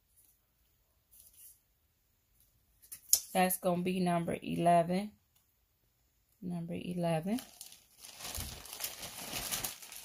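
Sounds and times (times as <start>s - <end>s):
packaging rustling and crinkling: 7.3s - 10.0s.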